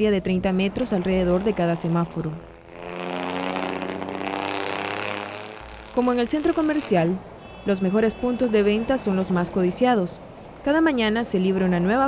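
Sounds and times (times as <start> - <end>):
vehicle engine running: 0.1 - 7.4.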